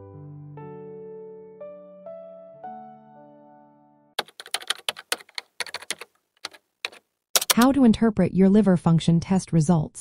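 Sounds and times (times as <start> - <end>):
keyboard typing clicks: 4.2 - 7.8.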